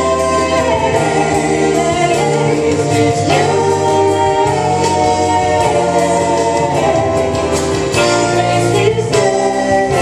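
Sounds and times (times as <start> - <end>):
vocal trio singing in harmony: 0.0 - 10.0.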